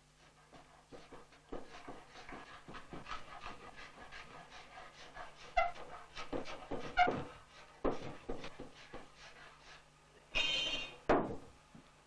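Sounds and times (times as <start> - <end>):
cabinet scraper scraping wood: 0.2 - 9.8
scraper squeak: 6.8 - 7.3.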